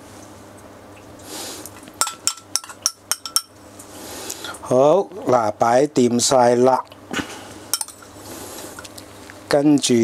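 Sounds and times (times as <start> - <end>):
spoon clinking glass bowl: 2.0 - 3.6, 7.8 - 8.1.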